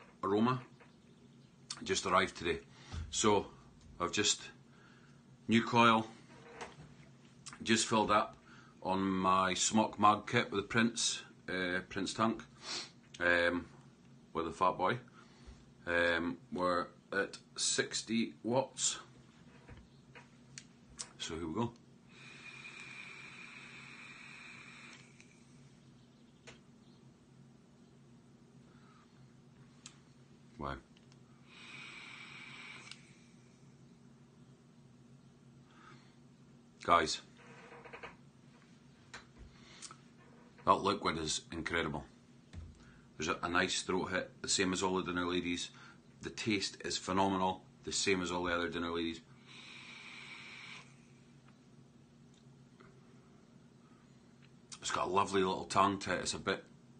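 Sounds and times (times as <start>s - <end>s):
vape coil hissing with whistle: 22.2s - 25.4s, 31.6s - 33.2s, 49.6s - 51.0s.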